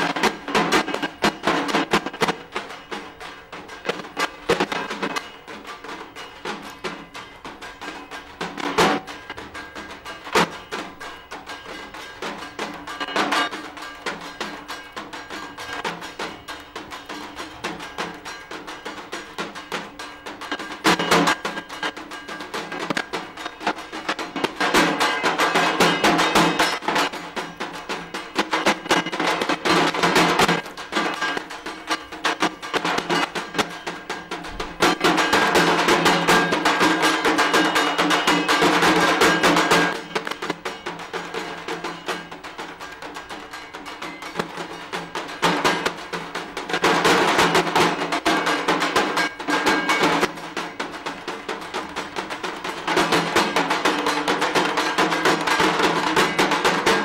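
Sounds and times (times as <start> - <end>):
drums beaten with sticks: 0.0 - 57.0.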